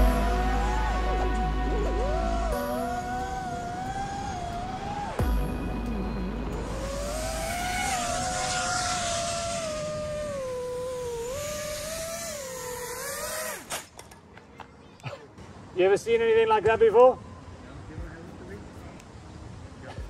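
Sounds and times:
drone motors whining: 0.0 - 13.9
wind rush: 2.5 - 12.0.

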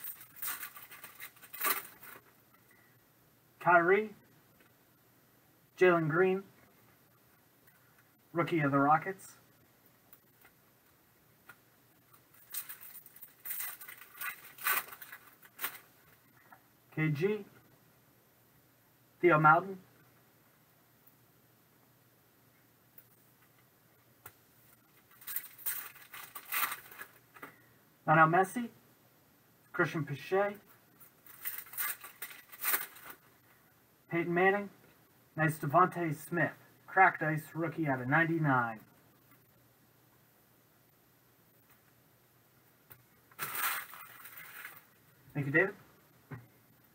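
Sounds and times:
foil wrapper crinkling: 0.0 - 2.2, 12.3 - 15.9, 25.1 - 27.2, 31.2 - 33.2, 43.3 - 44.9.

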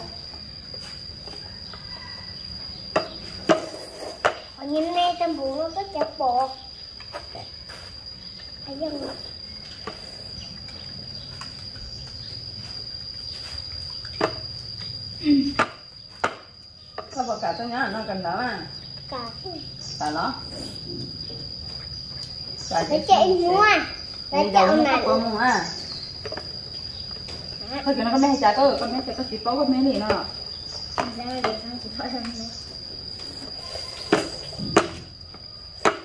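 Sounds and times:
high-pitched insect drone: 0.0 - 36.0
woman speaking: 24.3 - 25.9, 27.6 - 30.4, 31.0 - 32.6.

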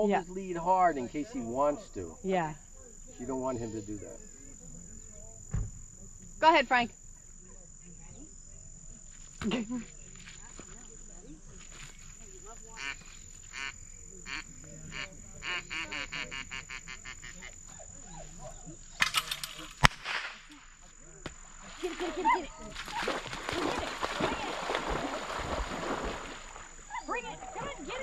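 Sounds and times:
short pitched calls: 12.7 - 19.0
blank shot crack: 19.0 - 21.5.

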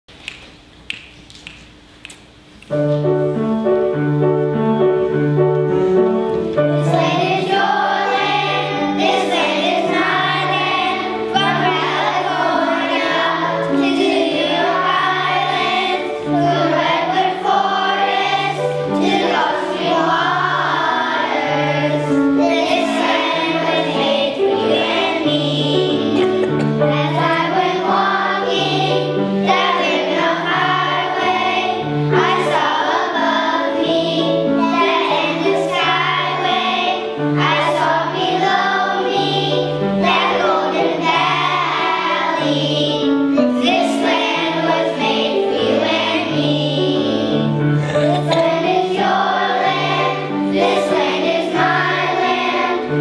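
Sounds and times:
children's choir singing: 4.4 - 53.0.

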